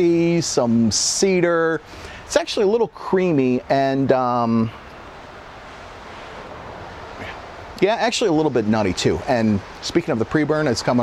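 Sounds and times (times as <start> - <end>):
man speaking: 0.0 - 4.8, 7.2 - 11.0
wind hissing: 0.0 - 11.0.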